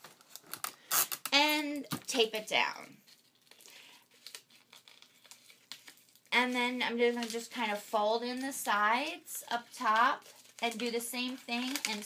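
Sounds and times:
bubble wrap and paper crinkling: 0.0 - 1.4, 2.0 - 12.0.

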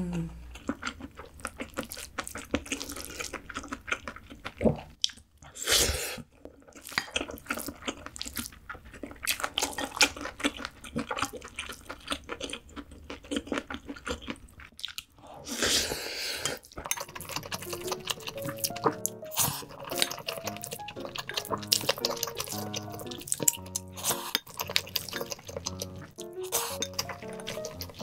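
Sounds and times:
wet chewing: 0.0 - 28.0
spoon scraping glass bowl: 16.9 - 28.0.

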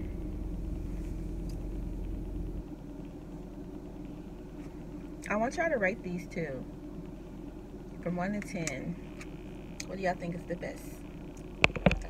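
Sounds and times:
car engine idling: 0.0 - 11.9.

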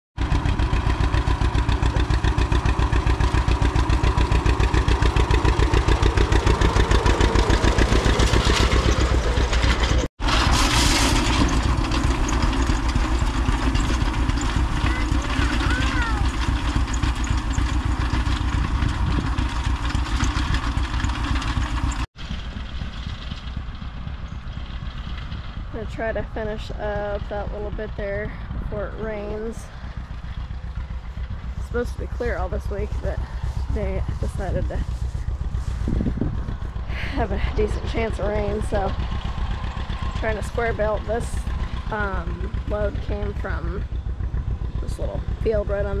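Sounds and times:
tractor engine pulsing: 0.2 - 46.0.

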